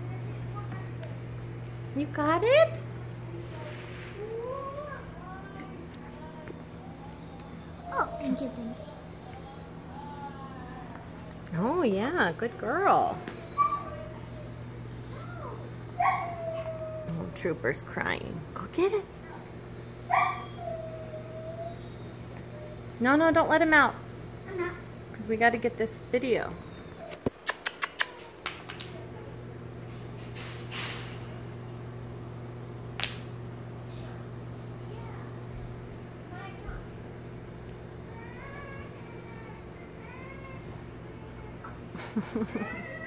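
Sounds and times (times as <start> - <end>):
dog whining: 6.8 - 11.1, 13.3 - 17.5, 20.1 - 22.9.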